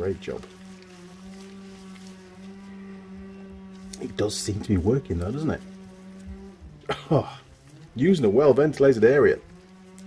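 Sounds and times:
distant chainsaw running: 0:00.0 - 0:10.0.

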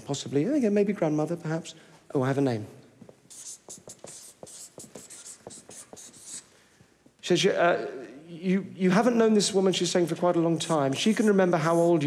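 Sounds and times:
marker pen writing on paper: 0:03.1 - 0:06.5, 0:10.6 - 0:12.0.

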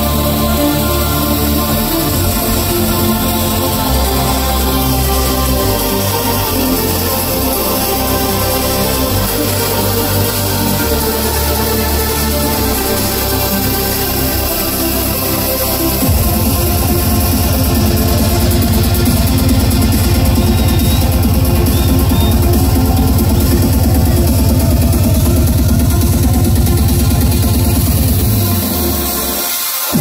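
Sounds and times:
loud trance music: 0:00.0 - 0:30.0.

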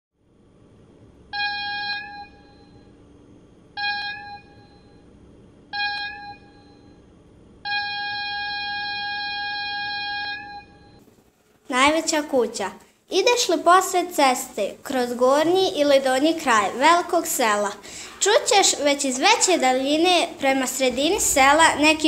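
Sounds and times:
faint low rumble: 0:18.2 - 0:22.0.

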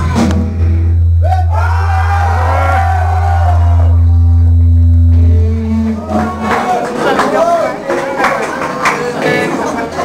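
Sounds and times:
rock band holding a note: 0:00.0 - 0:07.8.

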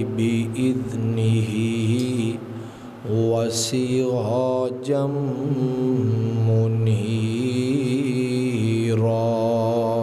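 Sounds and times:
man chanting into a microphone: 0:00.0 - 0:10.0.

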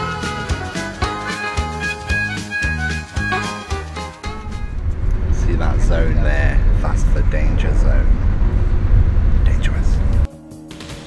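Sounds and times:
coach cabin rumble: 0:04.2 - 0:10.3.

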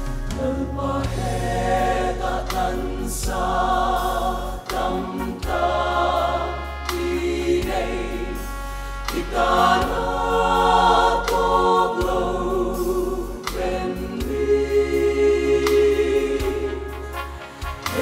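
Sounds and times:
low accompaniment: 0:00.0 - 0:18.0
mixed choir singing a hymn: 0:00.3 - 0:18.0.

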